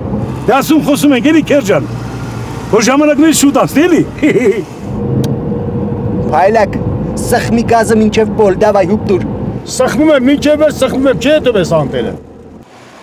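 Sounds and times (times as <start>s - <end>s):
engine hum and road noise: 0.0s - 13.0s
man laughing and talking: 3.8s - 4.8s.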